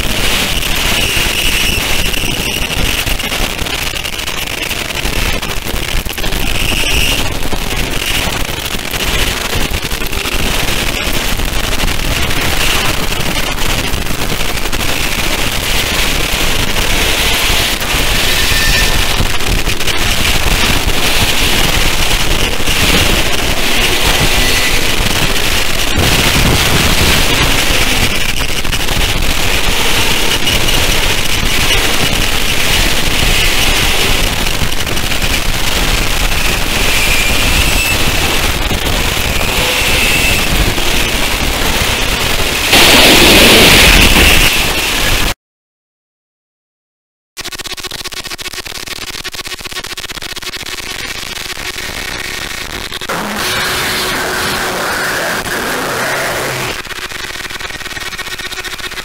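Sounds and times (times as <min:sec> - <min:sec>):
distorted electronic noise music: 0:00.0 - 0:45.4, 0:47.4 - 0:59.0.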